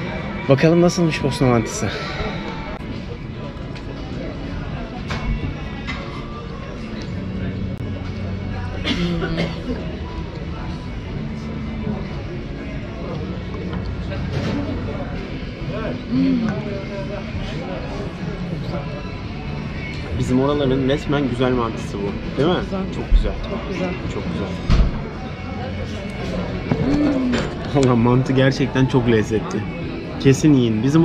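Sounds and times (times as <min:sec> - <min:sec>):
faint voices: 0:00.0 - 0:20.7, 0:21.7 - 0:31.0
background music: 0:00.0 - 0:31.0.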